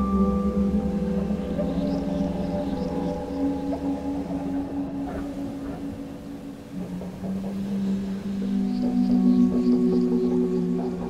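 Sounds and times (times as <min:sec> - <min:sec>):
faint scattered higher sounds: 0:00.0 - 0:11.0
low drone music: 0:00.0 - 0:11.0.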